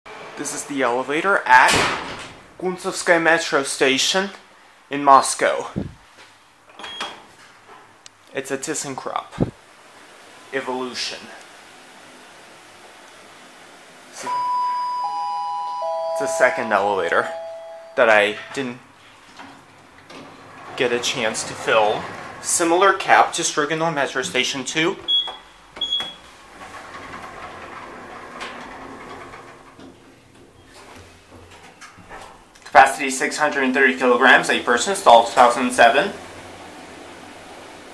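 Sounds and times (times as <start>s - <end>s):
elevator doors closing: 11.6s - 18.7s, 19.6s - 23.5s, 25.0s - 32.5s, 35.2s - 37.9s
lift call button beep: 14.2s - 18.5s, 25.1s - 26.2s.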